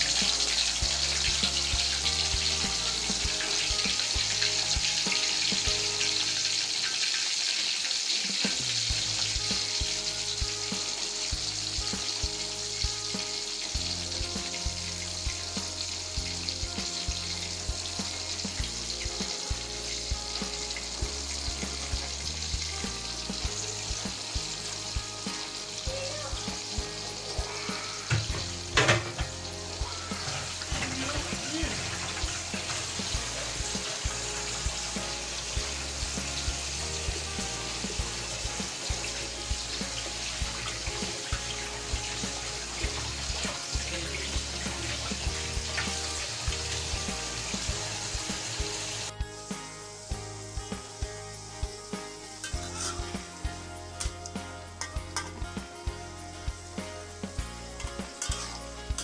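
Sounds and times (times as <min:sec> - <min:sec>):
fish sizzling in hot oil: 0:00.0 - 0:59.0.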